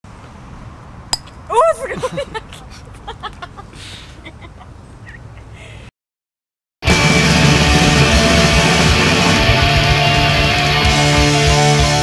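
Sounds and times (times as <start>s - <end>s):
outdoor background noise: 0.1s - 5.9s.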